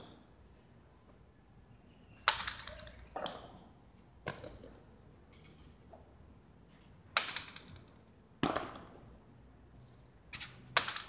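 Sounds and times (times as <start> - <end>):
hard ball cracking on court: 8.4 - 9.0.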